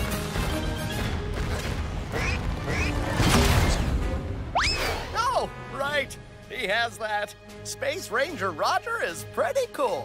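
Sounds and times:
cartoon action music: 0:00.0 - 0:05.7.

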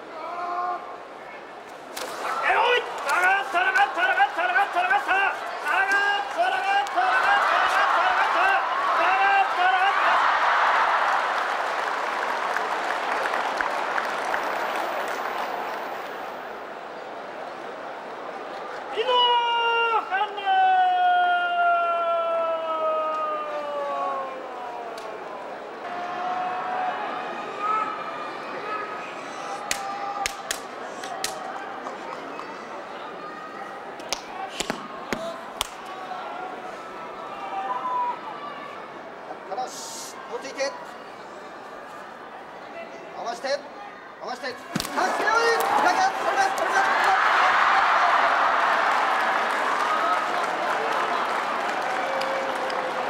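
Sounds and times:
crowd murmur: 0:23.4 - 0:47.2.

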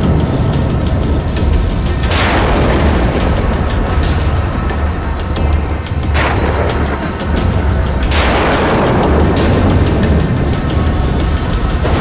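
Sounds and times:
low suspense drone: 0:00.0 - 0:12.0.

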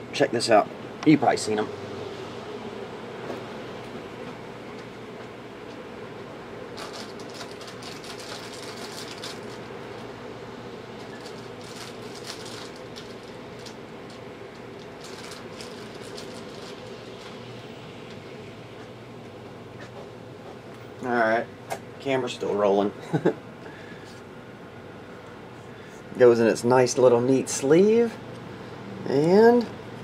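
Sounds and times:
low room hum: 0:00.0 - 0:30.0.

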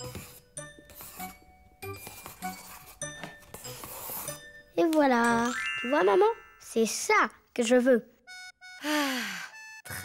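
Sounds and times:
pencil scribbling on paper: 0:00.0 - 0:04.5
tinkling cartoon music: 0:00.0 - 0:07.3.

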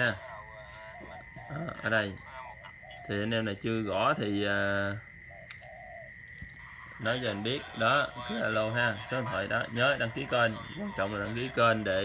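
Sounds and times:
dove cooing: 0:00.0 - 0:12.0.

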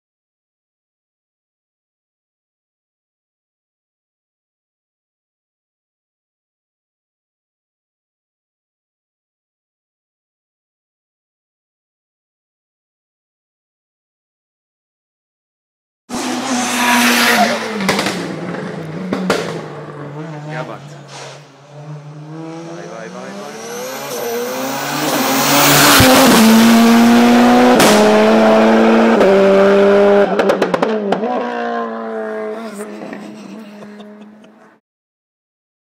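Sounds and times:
race car engine revving through gears: 0:16.1 - 0:34.7
exhaust pops: 0:17.8 - 0:19.8.

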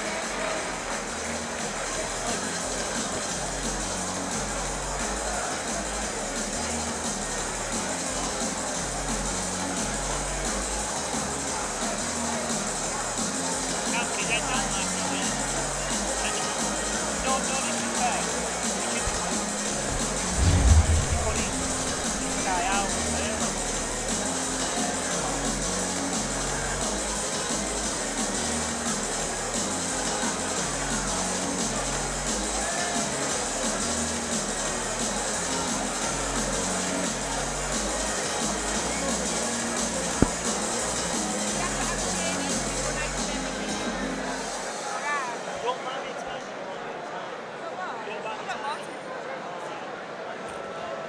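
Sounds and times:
crowd chatter in a hall: 0:00.0 - 0:51.0
music with low drum pattern: 0:19.0 - 0:23.5
loud low thump: 0:19.8 - 0:23.3.

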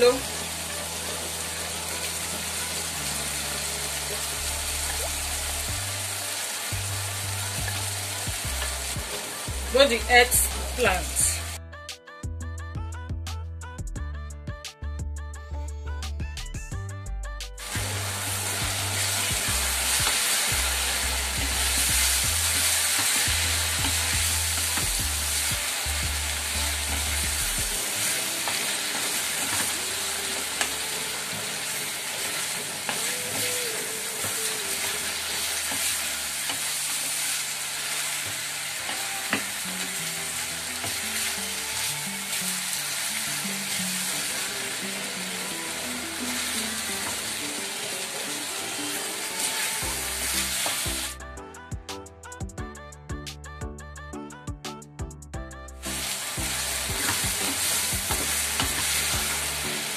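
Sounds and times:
vegetables sizzling in oil: 0:00.0 - 0:11.6, 0:17.6 - 0:51.2, 0:55.9 - 0:59.9.

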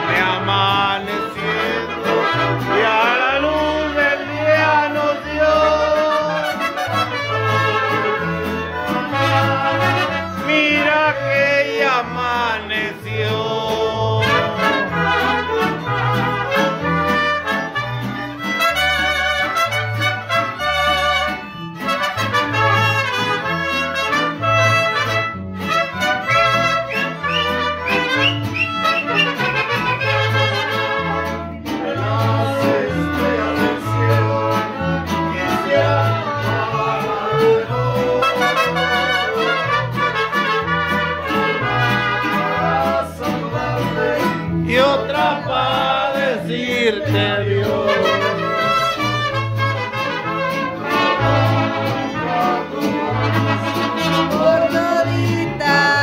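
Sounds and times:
plucked bass guitar: 0:00.0 - 0:06.6, 0:07.2 - 0:56.0
mariachi band playing: 0:00.0 - 0:56.0
strummed guitars: 0:00.0 - 0:56.0.

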